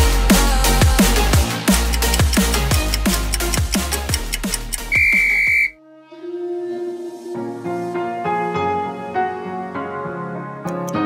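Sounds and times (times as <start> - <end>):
fast electronic workout music: 0.0 - 5.7
high whistle-like timer tone: 4.8 - 5.8
soft piano music: 6.2 - 11.0.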